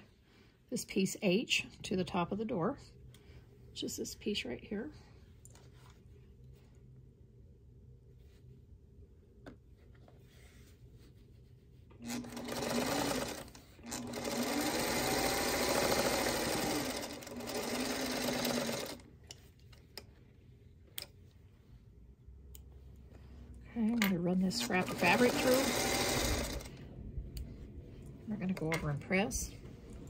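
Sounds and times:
sewing machine stitching: 12.0 - 19.0, 24.5 - 26.8.

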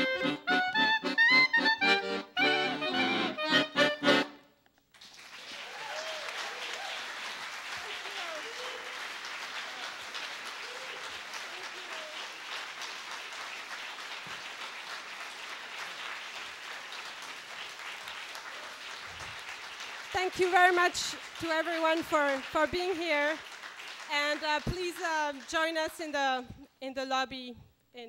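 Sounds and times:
audience applauding: 4.9 - 26.0.

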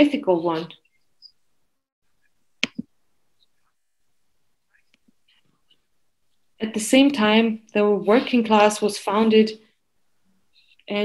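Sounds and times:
clicks close to microphone: 2.6 - 2.9.

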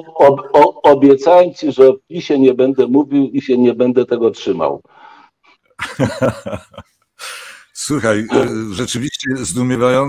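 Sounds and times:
man laughing: 5.8 - 6.8.

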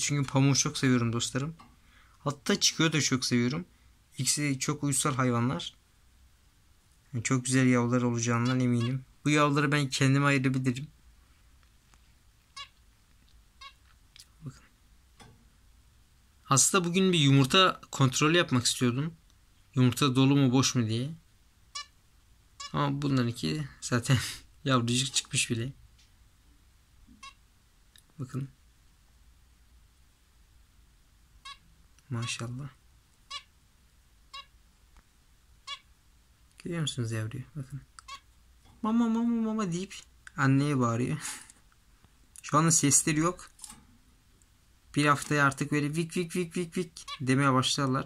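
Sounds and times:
room noise: 0.0 - 48.0
cage bird chirping: 7.3 - 9.8, 12.4 - 15.8, 21.6 - 23.4, 24.8 - 28.2, 31.3 - 33.6, 34.2 - 34.6, 35.5 - 36.6, 37.6 - 38.8, 46.8 - 48.0.

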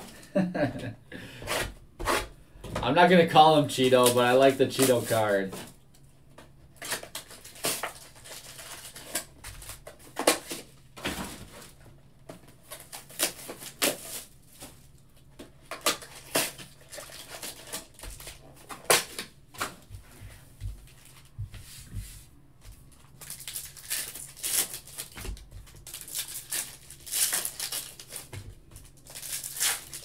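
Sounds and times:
plastic wrappers crinkling: 3.5 - 5.8, 6.8 - 10.7, 15.6 - 19.3, 22.9 - 30.0.

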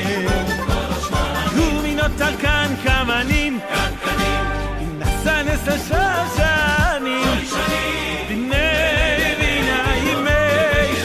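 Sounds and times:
instrumental accompaniment: 0.0 - 11.0
person singing with vibrato: 0.0 - 11.0.

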